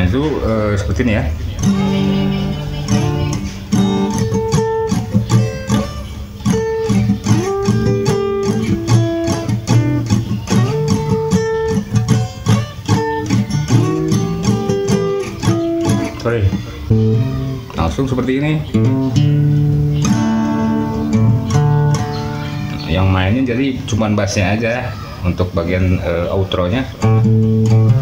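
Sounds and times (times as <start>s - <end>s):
acoustic guitar picking: 0.0s - 28.0s.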